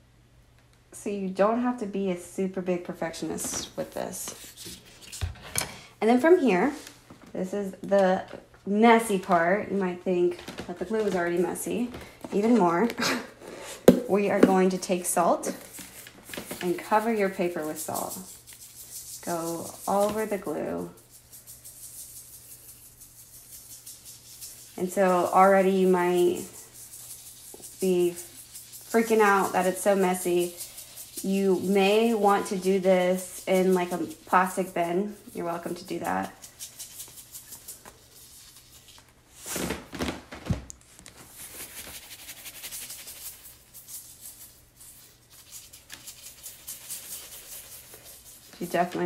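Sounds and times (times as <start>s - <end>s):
salt grains rattling: 15.6s - 38.9s, 41.4s - 49.0s.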